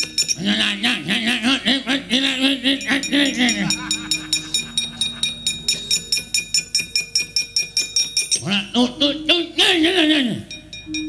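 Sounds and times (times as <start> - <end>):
held gamelan tones: 0.0 - 11.0.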